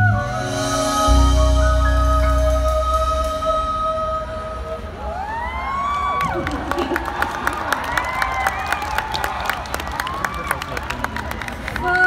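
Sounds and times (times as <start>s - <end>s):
crowd cheering and screaming: 4.8s - 12.0s
scattered clapping: 6.2s - 11.9s.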